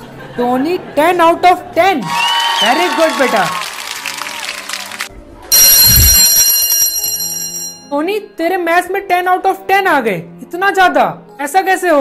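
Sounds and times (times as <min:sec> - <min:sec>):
school bell ringing: 0:05.5 - 0:07.9.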